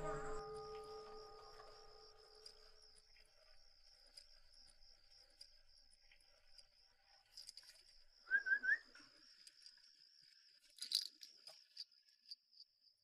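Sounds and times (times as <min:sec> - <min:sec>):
soft music: 0:00.0 - 0:02.5
crickets chirping: 0:00.0 - 0:13.0.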